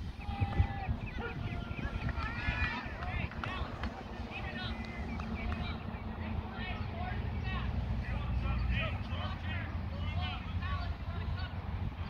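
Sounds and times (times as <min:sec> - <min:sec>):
distant scattered voices: 0:00.0 - 0:12.0
low wind rumble on microphone: 0:00.0 - 0:12.0.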